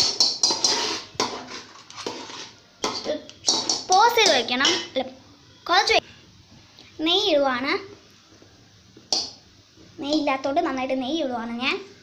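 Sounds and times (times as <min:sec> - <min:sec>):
metal spatula scraping a pan: 0:00.0 - 0:04.9
child speaking loudly: 0:03.9 - 0:06.0.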